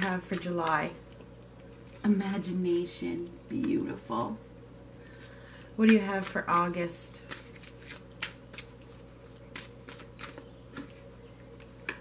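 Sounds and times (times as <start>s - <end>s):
cards being shuffled: 5.9s - 11.0s.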